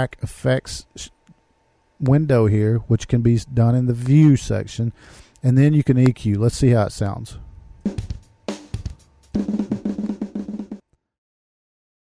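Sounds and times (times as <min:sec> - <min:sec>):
drum beats: 0:07.8 - 0:10.8.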